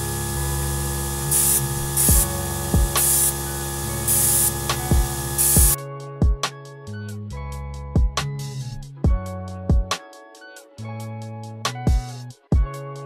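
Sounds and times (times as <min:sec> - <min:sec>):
airbrush spraying hiss: 0:00.0 - 0:05.8
background music with deep beat: 0:01.3 - 0:13.0.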